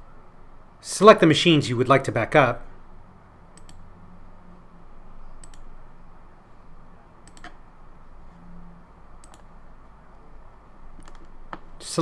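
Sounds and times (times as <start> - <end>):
faint steady hum: 0.0 - 12.0
computer mouse button clicks: 5.4 - 5.7, 7.2 - 7.6, 9.2 - 9.5.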